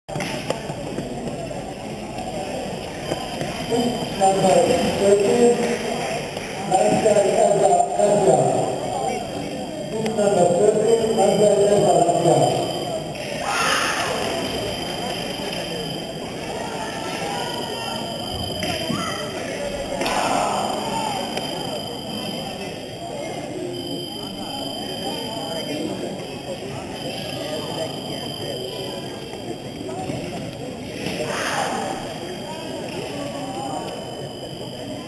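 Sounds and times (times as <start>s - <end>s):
crowd chatter in hall: 0.1s - 35.0s
man speaking: 6.6s - 13.0s.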